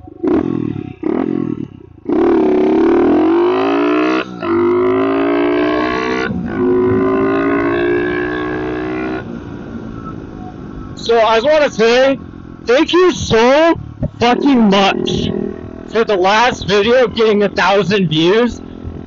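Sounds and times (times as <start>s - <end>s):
motorbike engine accelerating: 0.0s - 19.0s.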